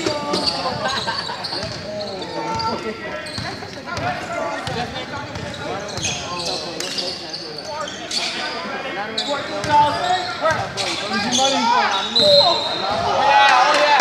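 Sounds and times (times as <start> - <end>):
people shouting and chattering: 0.0 - 14.0.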